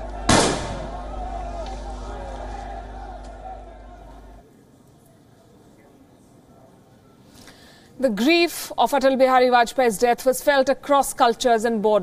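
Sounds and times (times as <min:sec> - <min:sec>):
rifle volley crack: 0:00.0 - 0:04.3.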